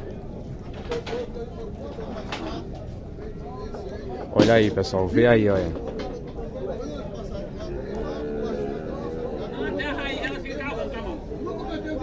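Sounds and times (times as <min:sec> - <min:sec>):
several people talking at once: 0:00.0 - 0:12.0.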